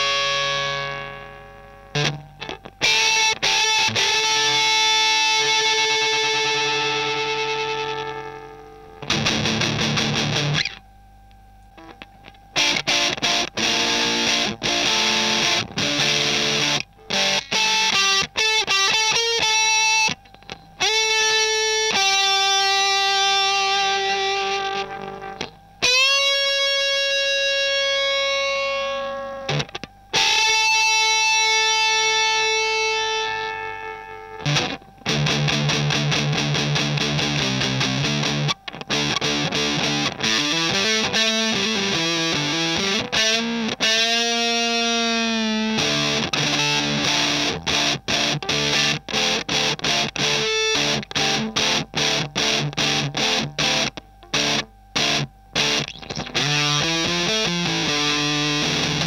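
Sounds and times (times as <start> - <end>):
distorted fuzz electric guitar: 0.0 - 59.0.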